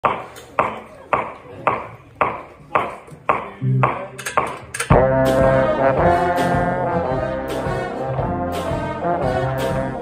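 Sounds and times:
trombone: 4.8 - 10.0.

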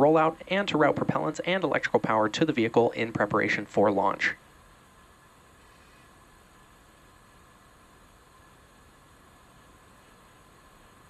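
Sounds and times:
faint hum: 0.0 - 11.0
faint steady hiss: 0.0 - 11.0.

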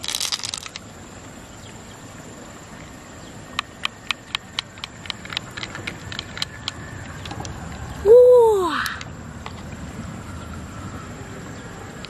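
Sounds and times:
sharp clicks: 3.5 - 7.6
loud rising and falling call: 7.9 - 9.1.

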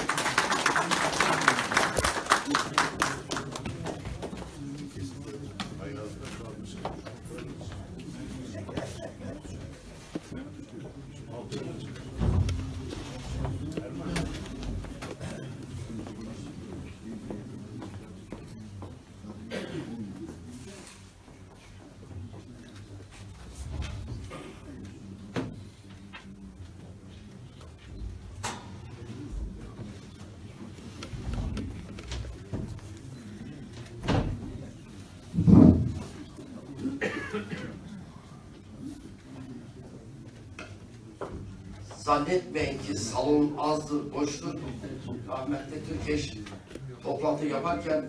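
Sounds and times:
low voices murmuring: 0.0 - 48.0.

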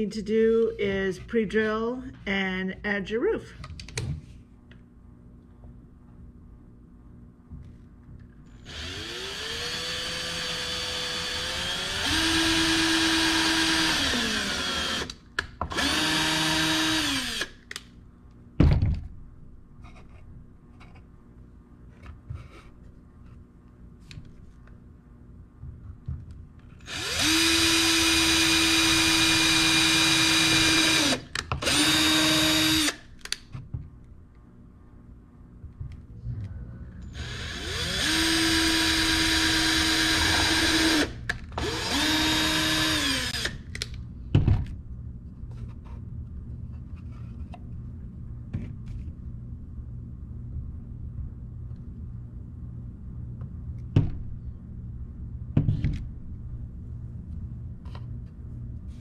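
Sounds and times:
cordless drill whining: 8.5 - 15.1, 15.7 - 17.6, 26.8 - 33.0, 37.2 - 43.6.

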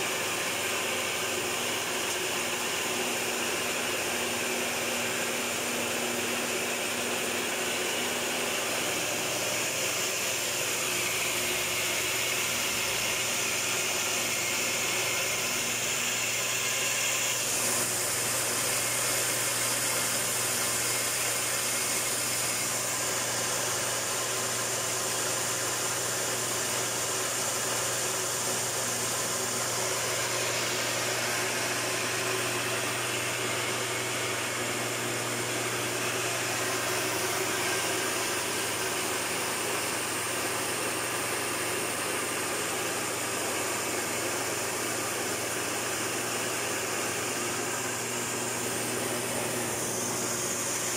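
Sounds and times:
blower rushing noise: 0.0 - 50.9
rice mill motor hum: 0.0 - 50.9.

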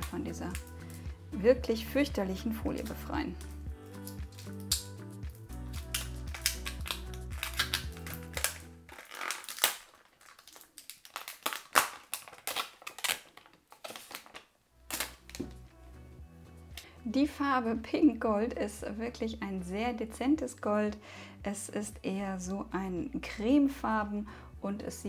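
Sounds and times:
plastic film crackling: 0.0 - 1.1, 3.4 - 15.6
background music: 0.0 - 9.7, 14.7 - 25.0.

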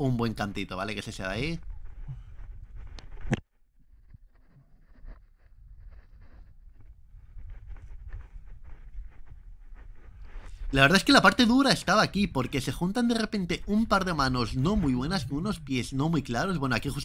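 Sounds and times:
hands and shoes scuffing rock: 4.8 - 11.3.

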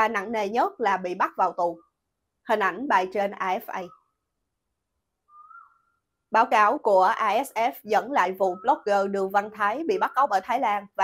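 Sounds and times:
faint high whistle-like tone: 5.3 - 6.0.

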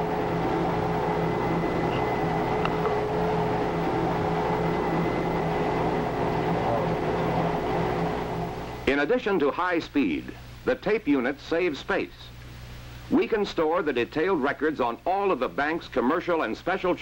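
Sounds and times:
tape unit whirring: 0.0 - 8.9.

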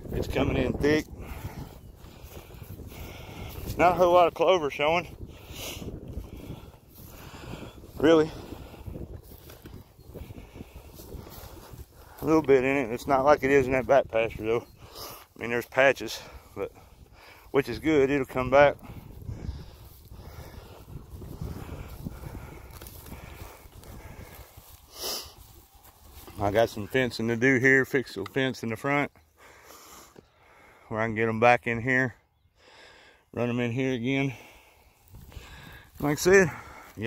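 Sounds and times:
wind buffeting microphone: 0.0 - 27.4, 34.4 - 37.0
footsteps through grass: 0.0 - 28.8, 34.3 - 37.0.

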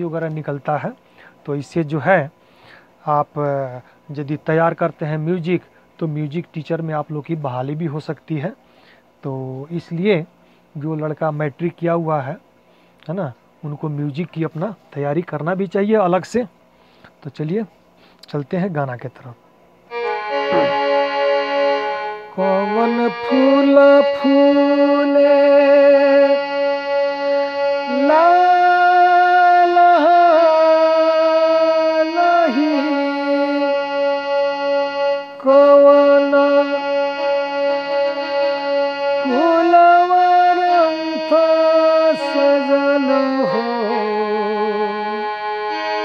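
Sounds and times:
electronic keyboard slow melody: 19.9 - 46.0.

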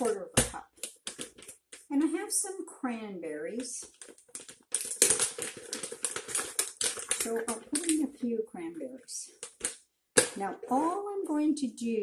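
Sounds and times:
plastic bag crinkling: 0.0 - 1.9, 3.6 - 8.2, 9.3 - 10.4.

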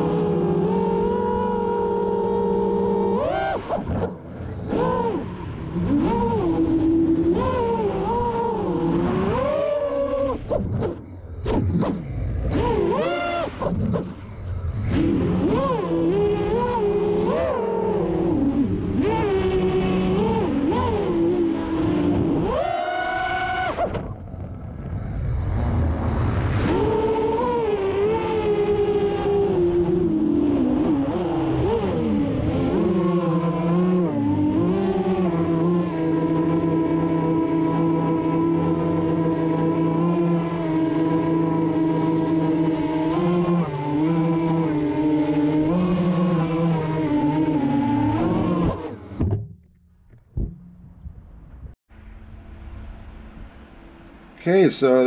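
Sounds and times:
drone motors whining: 0.0 - 54.4.

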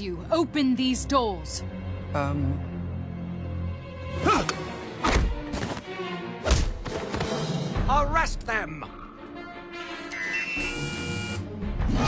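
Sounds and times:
orchestral score music: 0.0 - 12.0
control panel chirping: 10.1 - 11.4
electronic buzz: 10.1 - 11.5.

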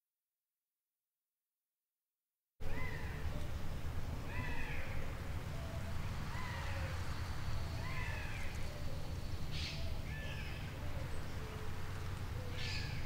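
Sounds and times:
low outdoor rumble: 2.6 - 13.0.

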